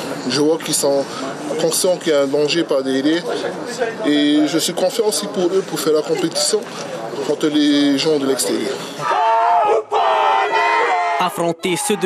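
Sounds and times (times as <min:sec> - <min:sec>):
group shouting a chant in unison: 0:09.0 - 0:12.0.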